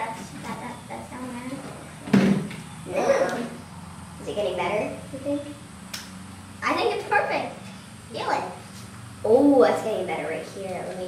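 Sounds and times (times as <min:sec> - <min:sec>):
children's vocal sounds: 0:02.8 - 0:03.6.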